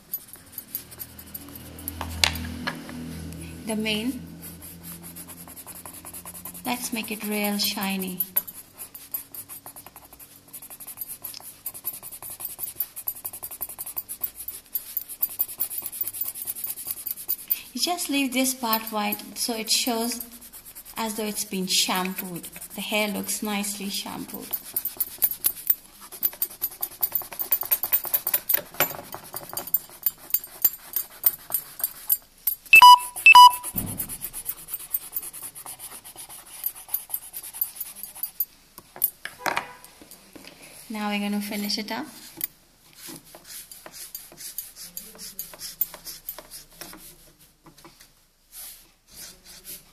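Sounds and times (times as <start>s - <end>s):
pencil scratching on paper: 0.2s - 2.0s, 4.1s - 28.2s, 33.4s - 38.3s, 43.0s - 47.3s, 48.5s - 49.9s
short electronic beeps: 32.7s - 33.7s.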